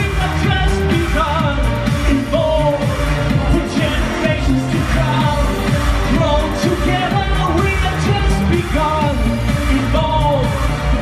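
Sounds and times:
man singing: 0.0 - 11.0
synth-pop band music: 0.0 - 11.0.

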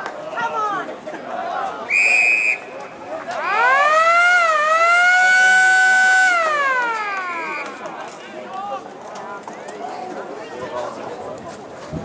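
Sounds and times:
motor siren wailing: 3.4 - 7.8.

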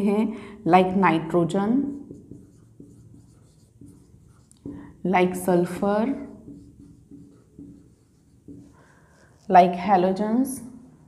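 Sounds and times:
marker pen on whiteboard: 0.0 - 10.6.

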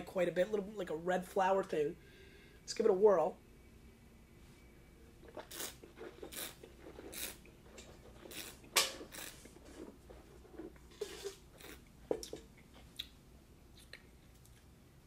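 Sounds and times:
wine slurping: 5.2 - 12.4.

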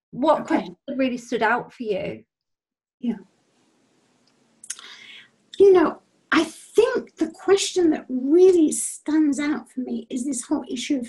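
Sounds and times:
faint video call background noise: 0.2 - 2.2, 3.0 - 11.0
person speaking: 0.2 - 2.2, 4.6 - 11.0.

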